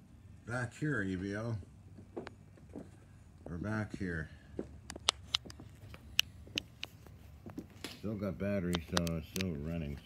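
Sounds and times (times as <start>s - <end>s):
sharp short clicks: 8.7s - 9.6s.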